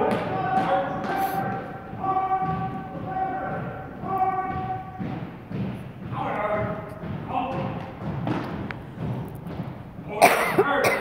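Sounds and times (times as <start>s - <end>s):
marching feet on hardwood floor: 0.0s - 10.4s
voices echoing in gym: 0.0s - 11.0s.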